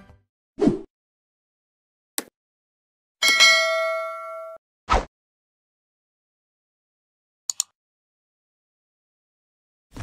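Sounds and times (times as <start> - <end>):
bell ding: 3.2 - 4.6.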